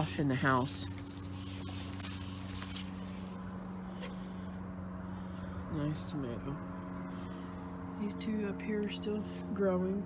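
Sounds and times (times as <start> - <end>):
rustling of plant leaves: 0.0 - 8.0
low mechanical hum: 0.0 - 10.0.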